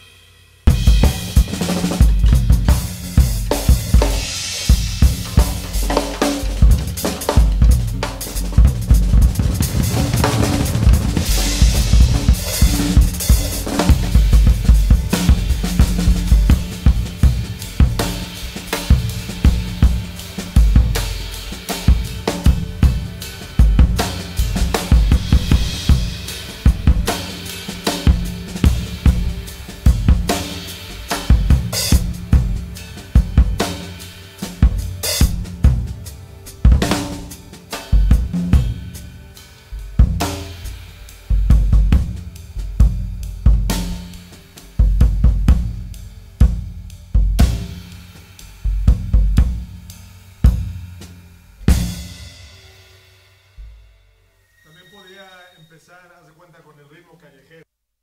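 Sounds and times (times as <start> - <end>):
solo jazz drum kit: 0.0 - 54.4.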